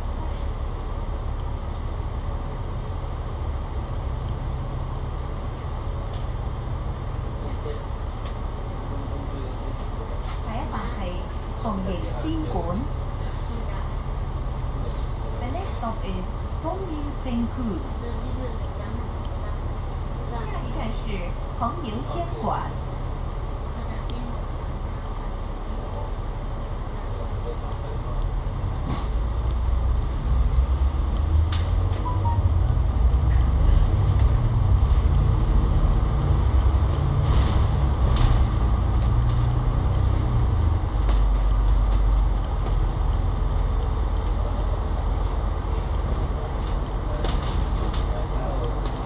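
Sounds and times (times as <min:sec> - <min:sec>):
bus diesel engine rumble: 0:00.0 - 0:49.0.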